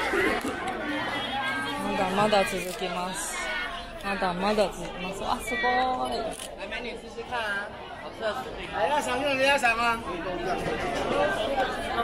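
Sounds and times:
people talking and chattering: 0.0s - 12.0s.

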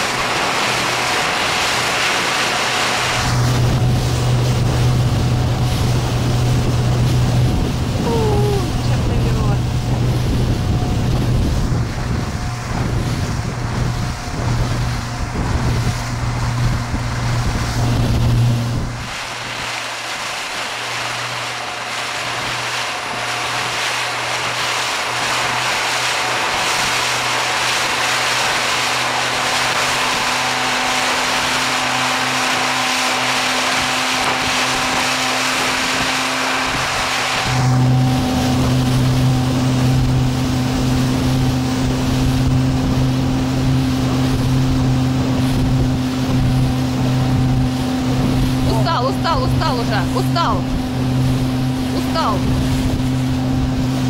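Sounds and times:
motorboat engine humming: 0.0s - 54.0s
rushing water: 0.0s - 54.0s
wind: 0.0s - 54.0s.

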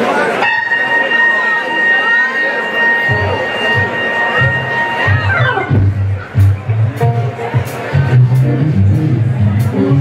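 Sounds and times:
long held high note: 0.4s - 6.0s
low bass notes: 2.7s - 10.0s.

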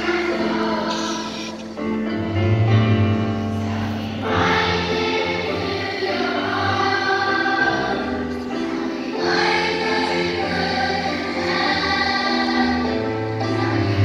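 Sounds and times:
children's choir singing: 0.0s - 14.0s.

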